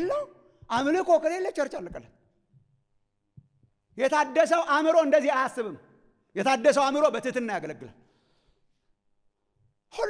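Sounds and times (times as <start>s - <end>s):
man's amplified speech: 0.0s - 2.2s, 3.9s - 8.0s.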